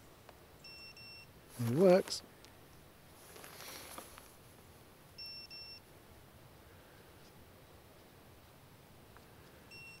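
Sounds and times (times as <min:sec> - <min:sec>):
high-pitched buzzer beep: 0:05.2 - 0:05.8, 0:09.7 - 0:10.0.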